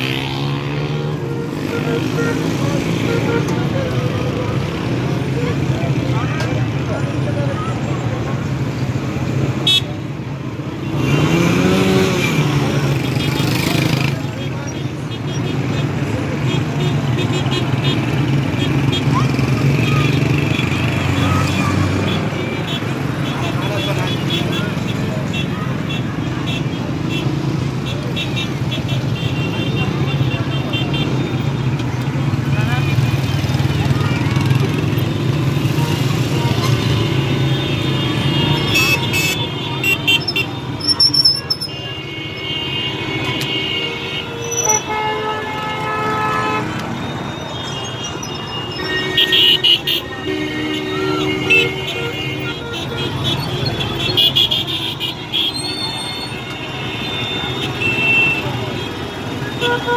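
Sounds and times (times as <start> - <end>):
car and scooter engines rumbling: 0.0 - 59.9
crowd voices: 0.0 - 59.9
car horns honking: 0.1 - 4.4, 9.5 - 10.1, 34.9 - 59.9.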